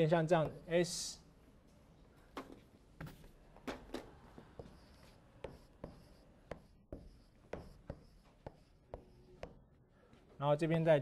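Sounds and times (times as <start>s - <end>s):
chalk tapping and scratching: 4.3s - 9.7s.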